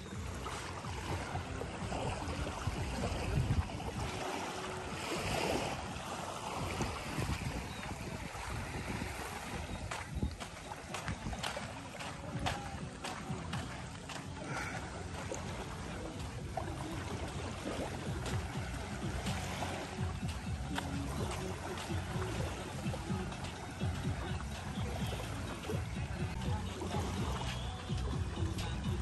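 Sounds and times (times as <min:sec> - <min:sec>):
calm sea rumble and hiss: 0:00.0 - 0:29.0
faint music: 0:00.0 - 0:29.0.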